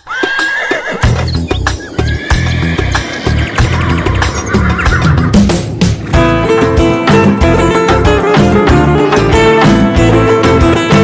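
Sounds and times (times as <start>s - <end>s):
horse whinnying: 0.0s - 5.4s
galloping hoofbeats: 0.0s - 6.9s
music with heavy low beat: 3.6s - 11.0s.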